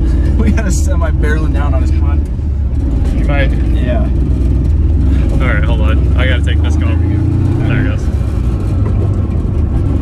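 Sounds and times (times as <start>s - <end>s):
engine and road noise in cabin: 0.0s - 10.0s.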